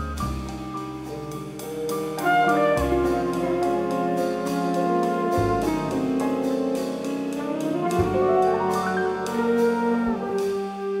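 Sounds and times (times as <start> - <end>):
jazz big band playing: 0.0 - 11.0
trombones holding brass chords: 2.2 - 11.0.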